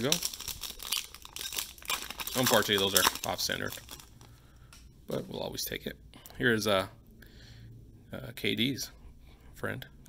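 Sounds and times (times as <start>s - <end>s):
foil wrapper crinkling and tearing: 0.0s - 4.3s.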